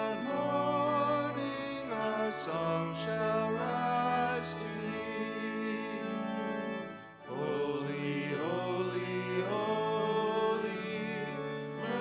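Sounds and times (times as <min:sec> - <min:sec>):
voices singing held notes: 0:00.0 - 0:12.0.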